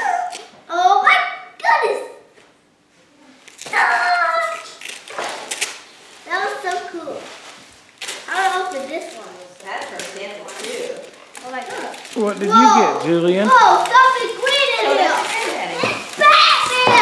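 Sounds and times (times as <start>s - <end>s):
wrapping paper rustling and tearing: 3.4s - 17.0s
children squealing: 15.8s - 17.0s.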